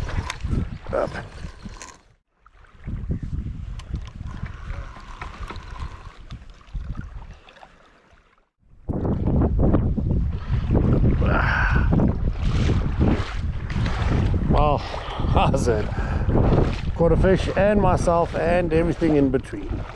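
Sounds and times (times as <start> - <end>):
wind buffeting microphone: 0.0 - 7.4, 8.7 - 19.9.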